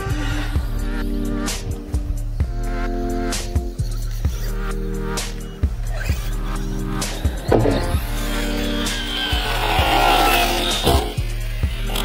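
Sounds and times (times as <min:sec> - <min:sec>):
background music with steady beat: 0:00.0 - 0:12.0
toy truck electric motor whining: 0:05.4 - 0:12.0
tyres scrabbling: 0:05.9 - 0:10.2.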